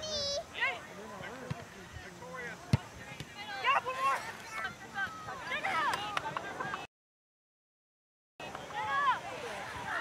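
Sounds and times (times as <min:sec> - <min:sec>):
soccer ball kick thud: 0:02.7 - 0:03.3.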